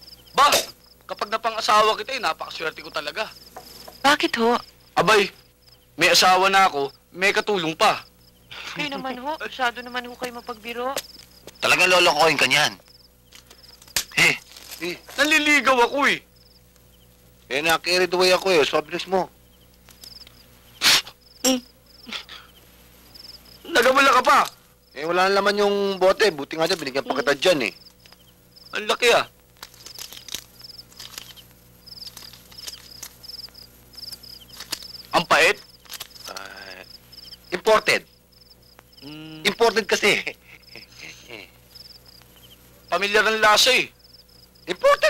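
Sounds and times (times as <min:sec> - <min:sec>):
crickets chirping: 0:00.0 - 0:45.0
loud breathy burst: 0:20.8 - 0:21.2
man speaking: 0:23.7 - 0:27.8, 0:42.9 - 0:43.9.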